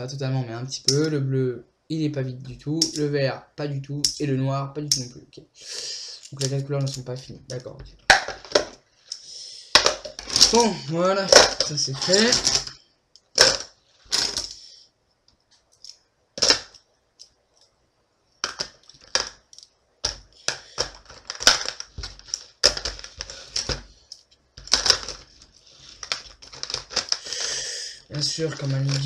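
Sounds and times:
plastic pens clattering in a tub: 0:09.8 - 0:12.8, 0:13.4 - 0:14.6, 0:18.4 - 0:27.5, 0:28.2 - 0:29.0.

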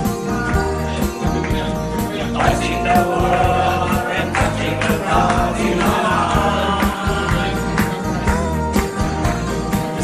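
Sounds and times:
acoustic guitar: 0:00.0 - 0:10.0
men singing together: 0:02.0 - 0:08.2.

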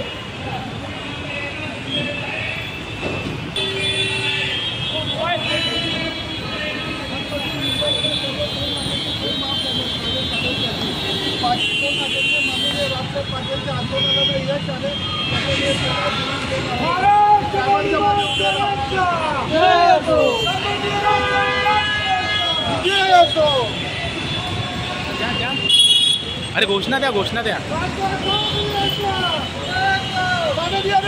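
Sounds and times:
road traffic noise: 0:00.0 - 0:31.0
people talking: 0:05.0 - 0:21.2.

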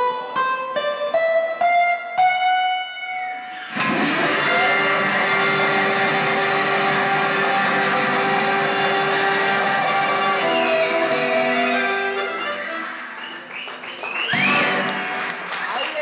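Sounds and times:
blues harmonica chords: 0:00.0 - 0:15.6
electric guitar run: 0:03.5 - 0:13.2, 0:14.4 - 0:15.6.

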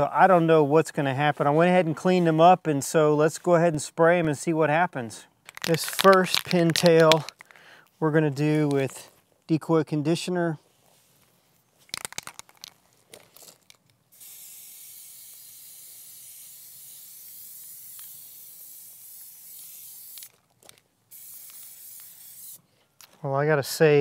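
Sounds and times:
spray can clicks: 0:05.5 - 0:07.4, 0:14.2 - 0:20.4, 0:21.1 - 0:22.6
aerosol spray hissing: 0:14.1 - 0:20.4, 0:21.1 - 0:22.6.

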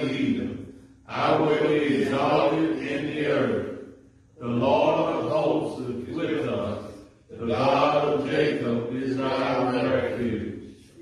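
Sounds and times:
man chanting: 0:00.0 - 0:00.5, 0:01.1 - 0:03.7, 0:04.4 - 0:10.6.

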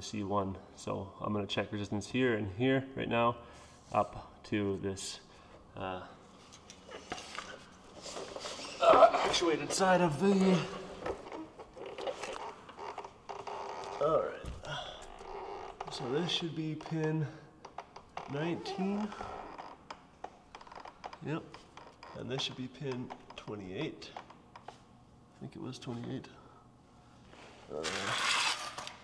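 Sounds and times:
man speaking: 0:08.8 - 0:11.0, 0:15.9 - 0:17.5, 0:18.2 - 0:19.2.

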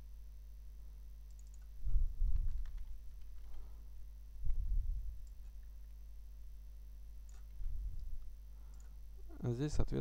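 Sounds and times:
steady low hum: 0:00.0 - 0:10.0
faint mouse clicks: 0:01.3 - 0:01.8, 0:07.2 - 0:09.0.

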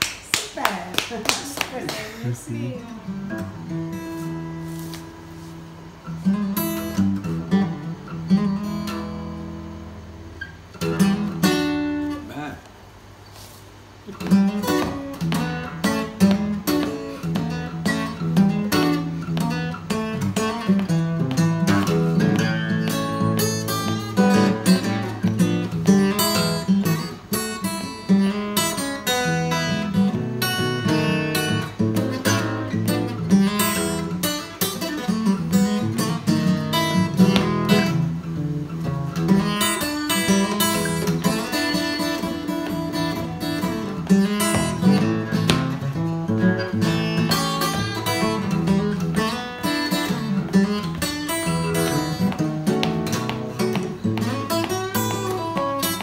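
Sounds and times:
fingerpicked acoustic blues guitar: 0:01.1 - 0:56.0.

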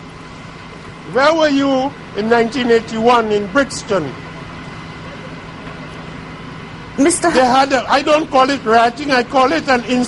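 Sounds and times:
engine hum: 0:00.0 - 0:10.0.

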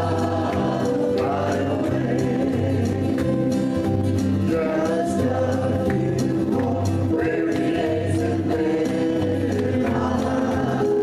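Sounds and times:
electric guitar: 0:00.0 - 0:11.0
group singing gospel song: 0:00.0 - 0:11.0
strummed acoustic guitar: 0:00.0 - 0:11.0.

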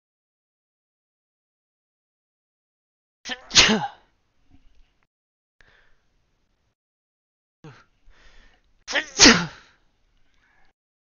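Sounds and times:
person sneezing: 0:03.3 - 0:04.0, 0:08.9 - 0:09.8
catch of breath: 0:05.6 - 0:06.1, 0:07.6 - 0:08.6.

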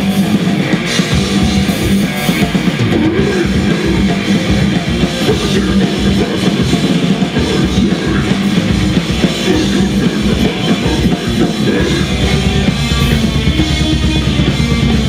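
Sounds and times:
death metal band playing live: 0:00.0 - 0:15.0.

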